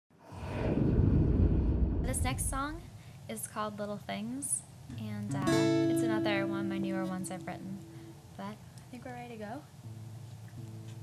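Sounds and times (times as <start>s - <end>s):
deep rushing whoosh: 0.1s - 3.0s.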